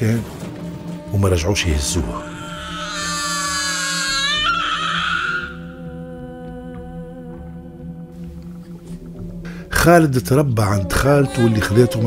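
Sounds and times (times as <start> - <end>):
low sustained music drone: 0.0 - 12.0
baby crying: 1.6 - 5.8.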